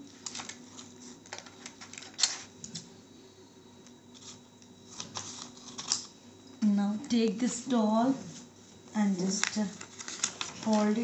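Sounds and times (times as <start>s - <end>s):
paper sheet crackling: 4.1s - 6.1s, 9.0s - 11.0s.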